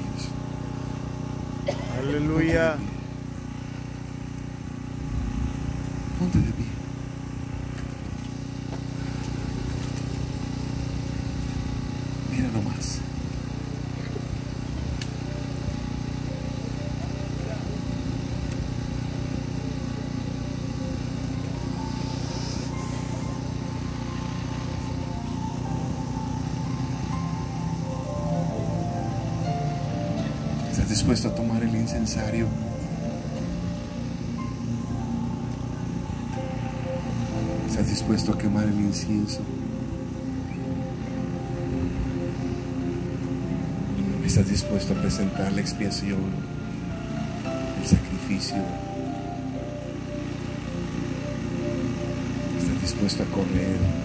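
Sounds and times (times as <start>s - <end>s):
electronic keyboard chords: 0.0s - 54.0s.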